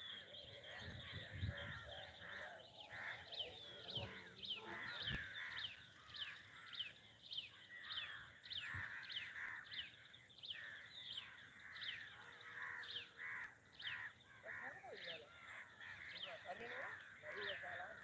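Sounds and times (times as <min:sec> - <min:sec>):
birds calling: 0:00.0 - 0:18.0
crows cawing: 0:00.0 - 0:18.0
short falling bird calls: 0:00.0 - 0:18.0.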